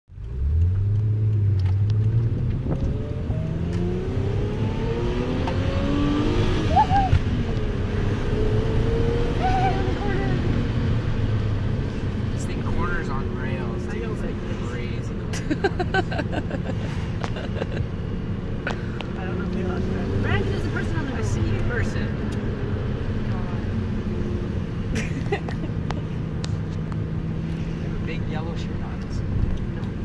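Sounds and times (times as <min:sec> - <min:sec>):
car engine accelerating: 0:00.1 - 0:30.0
road noise: 0:00.1 - 0:30.0.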